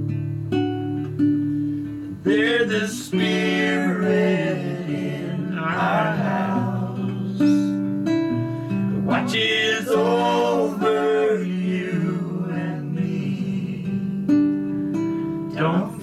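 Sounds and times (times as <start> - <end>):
strummed acoustic guitar: 0.0 - 16.0
voices singing in harmony: 2.2 - 7.8, 9.0 - 14.3, 15.5 - 16.0.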